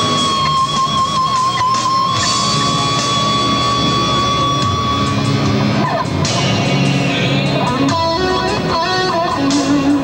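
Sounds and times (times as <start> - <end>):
electric guitar high note: 0.0 - 10.0.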